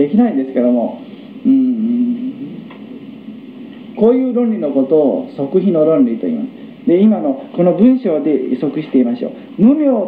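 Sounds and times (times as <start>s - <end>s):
recording hiss: 0.0s - 10.0s
man droning unnn: 1.4s - 2.7s.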